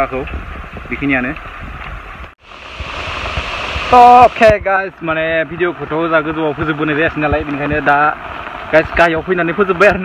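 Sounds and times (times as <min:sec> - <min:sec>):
rain falling on umbrella: 0:01.8 - 0:10.0.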